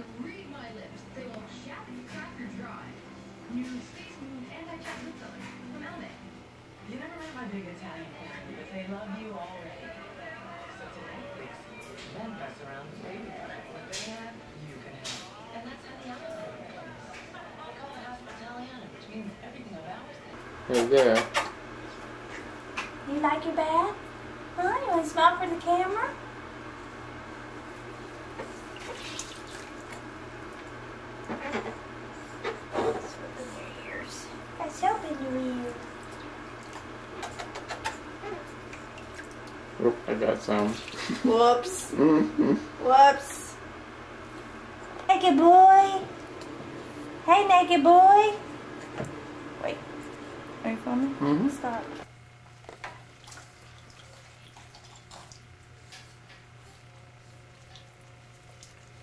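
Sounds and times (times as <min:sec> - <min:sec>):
steady low hum: 0:00.0 - 0:59.0
soft water splashes: 0:28.7 - 0:30.0, 0:38.5 - 0:39.6, 0:53.0 - 0:56.1.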